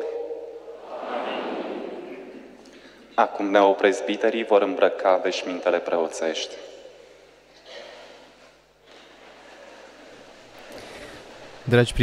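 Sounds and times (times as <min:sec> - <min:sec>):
chanted prayer in reverberant church: 0:00.0 - 0:02.5.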